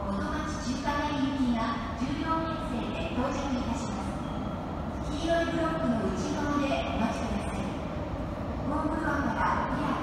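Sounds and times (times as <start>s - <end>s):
station announcement: 0.0s - 10.0s
subway train rumble: 0.0s - 10.0s.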